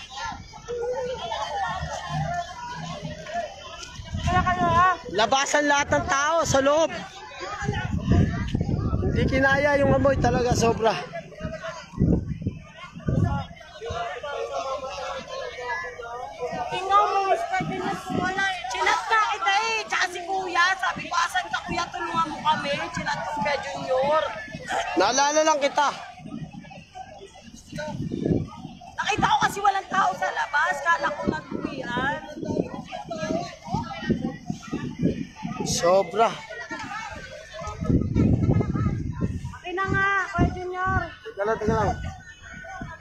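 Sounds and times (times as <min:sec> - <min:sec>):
indistinct voices: 0:00.0 - 0:43.0
people talking: 0:00.0 - 0:43.0.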